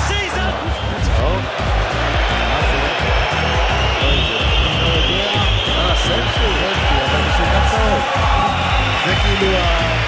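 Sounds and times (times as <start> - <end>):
music with heavy beat: 0.0 - 10.0.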